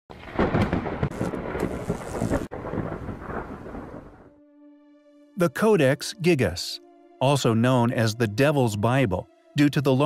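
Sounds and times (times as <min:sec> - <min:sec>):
rain: 0:00.1 - 0:04.2
deep rumble of thunder: 0:00.1 - 0:04.3
sharp thunder cracks: 0:00.1 - 0:04.3.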